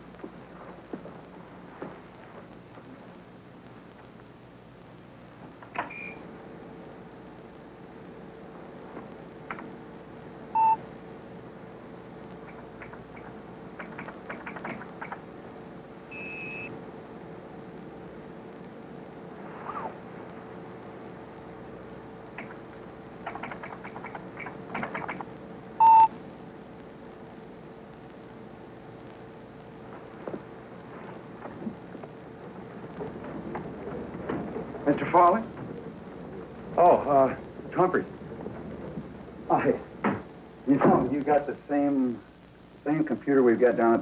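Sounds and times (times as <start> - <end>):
computer low hum: 0.0 - 44.0
short electronic beep: 25.8 - 26.1.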